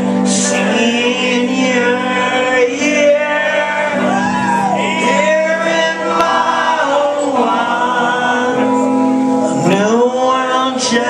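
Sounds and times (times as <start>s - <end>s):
amplified electric guitars: 0.0s - 11.0s
man singing and shouting: 0.3s - 8.8s, 9.4s - 11.0s.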